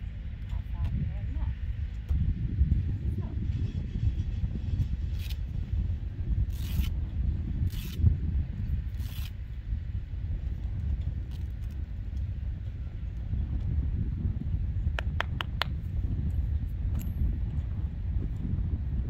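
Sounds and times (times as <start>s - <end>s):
steady low rumble: 0.0s - 19.0s.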